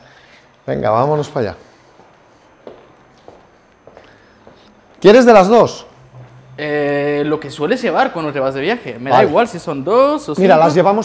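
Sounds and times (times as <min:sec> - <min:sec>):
footsteps on hard floor: 0:02.0 - 0:04.6.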